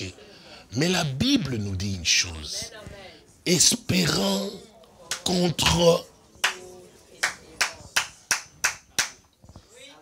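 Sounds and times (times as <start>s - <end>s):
hand claps: 5.1s - 5.3s, 6.4s - 6.6s, 7.2s - 9.3s.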